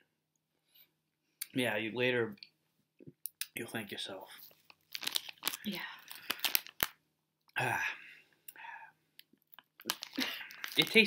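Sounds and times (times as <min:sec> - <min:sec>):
candy being chewed: 0:04.7 - 0:07.0, 0:09.2 - 0:11.0.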